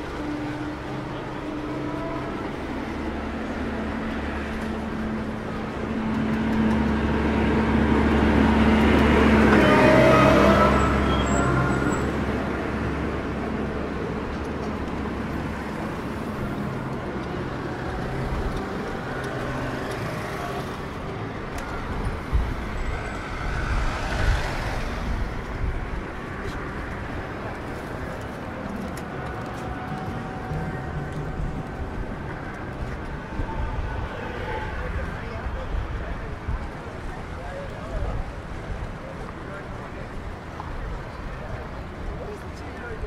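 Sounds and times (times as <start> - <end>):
large vehicle passing close: 0.0 - 37.0
steady traffic noise: 0.0 - 43.0.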